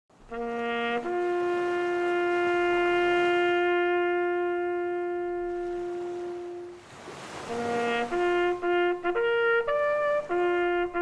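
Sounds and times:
brass horn long note: 0.3 - 11.0.

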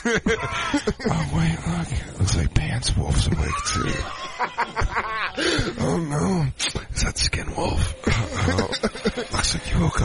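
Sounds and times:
people laughing: 0.0 - 1.5, 3.9 - 6.0, 8.0 - 10.0.

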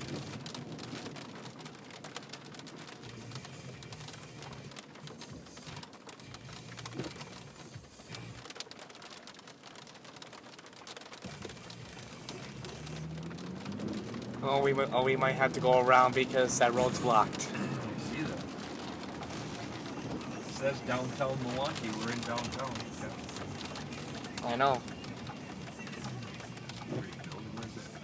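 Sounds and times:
rain on car roof: 0.0 - 28.0.

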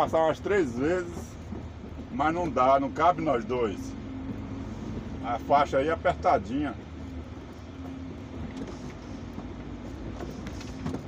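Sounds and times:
diesel truck engine running: 0.0 - 11.0
road noise: 0.0 - 11.0.

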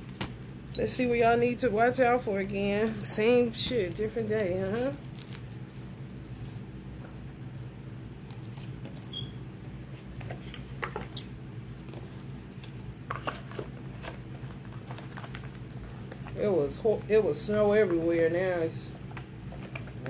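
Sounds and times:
low hum with steady tones: 0.0 - 20.0.

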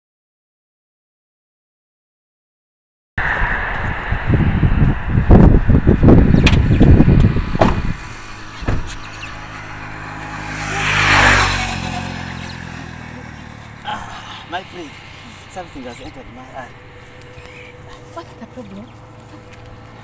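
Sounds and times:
passing vehicle: 3.2 - 20.0
van engine idling: 11.8 - 20.0.

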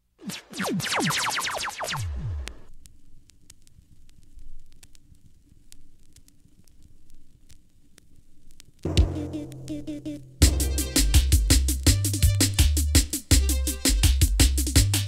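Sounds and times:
vinyl surface crackle: 0.3 - 8.9
echoing electronic sweeps: 8.9 - 11.4
dub music rhythm: 8.9 - 15.0.

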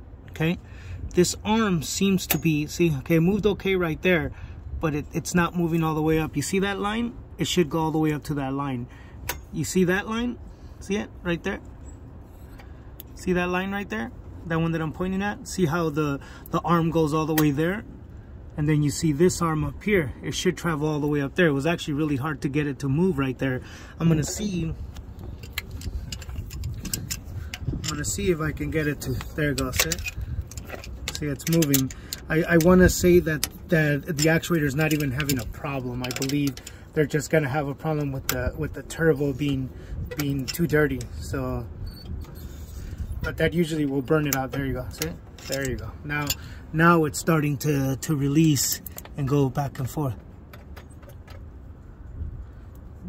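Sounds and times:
low background rumble: 0.0 - 53.0
faint metallic clicks of lever: 29.0 - 36.8.

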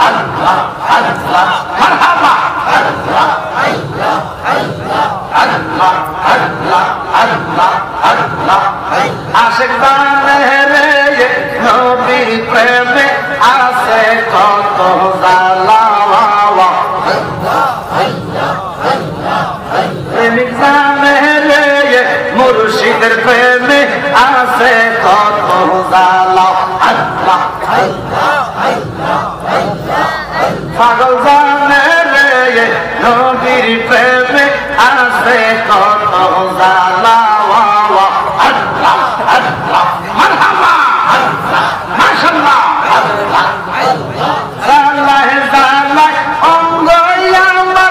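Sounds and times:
men chanting over loudspeakers: 0.0 - 47.9.

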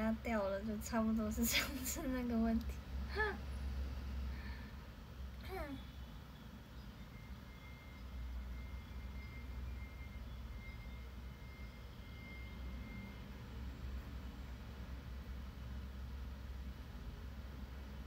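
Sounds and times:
low background rumble: 0.0 - 18.0.

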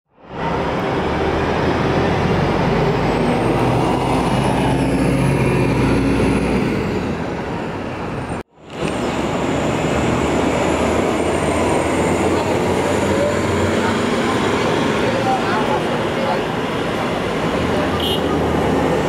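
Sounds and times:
street traffic: 0.1 - 19.0
bus engine running: 0.2 - 19.0.

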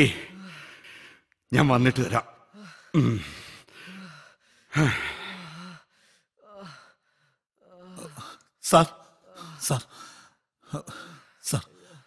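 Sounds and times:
man moaning and breathing: 0.0 - 1.2, 2.5 - 12.0.

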